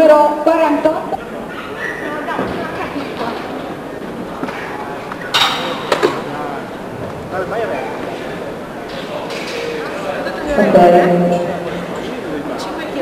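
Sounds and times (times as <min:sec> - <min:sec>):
spectators chattering in hall: 0:00.0 - 0:13.0.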